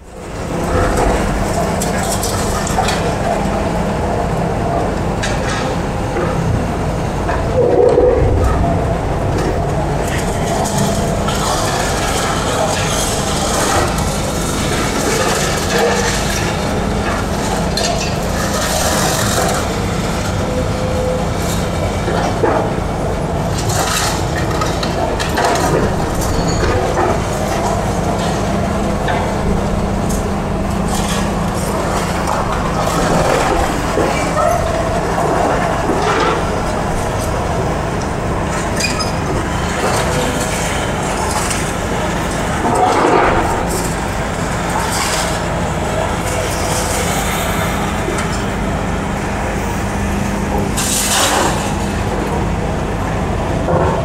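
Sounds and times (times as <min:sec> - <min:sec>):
diesel engine humming: 0:00.0 - 0:54.0.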